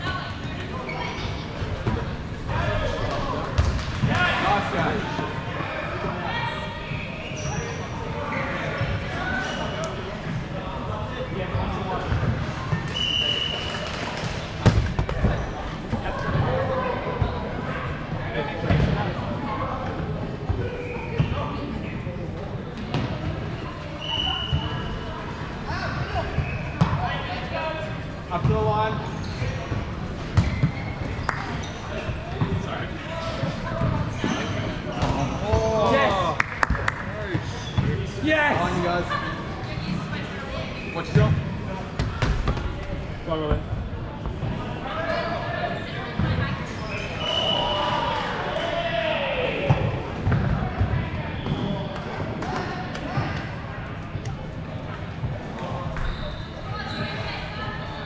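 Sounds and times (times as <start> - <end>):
players shouting and chatting: 0.0 - 58.0.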